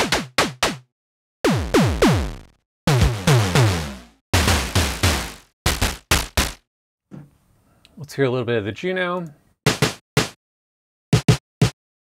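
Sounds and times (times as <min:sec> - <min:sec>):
electronic drum hits: 0:01.5 - 0:06.6.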